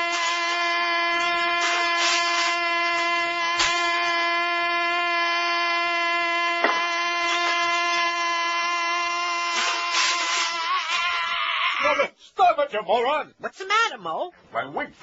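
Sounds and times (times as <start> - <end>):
man singing a long held note: 0.0 - 10.8.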